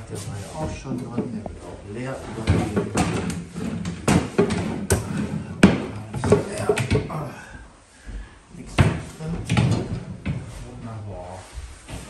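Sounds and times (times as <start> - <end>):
drawers opening and shutting: 2.1 - 7.3, 8.8 - 10.5.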